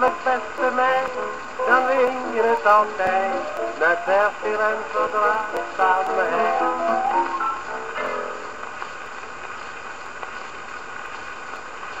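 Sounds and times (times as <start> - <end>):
record surface hiss and crackle: 0.0 - 12.0.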